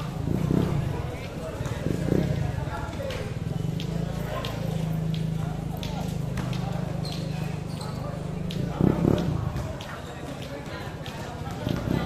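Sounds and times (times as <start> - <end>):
background chatter: 0.0 - 12.0.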